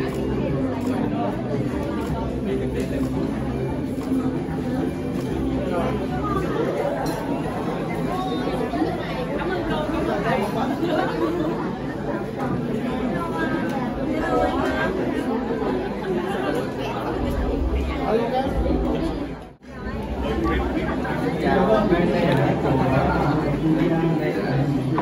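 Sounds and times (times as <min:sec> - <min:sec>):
chatter of people talking: 0:00.0 - 0:25.0.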